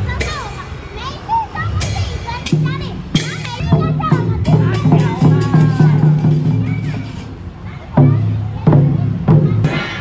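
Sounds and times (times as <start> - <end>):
children's voices: 0.0 - 10.0
hand drums and cymbals: 0.0 - 10.0.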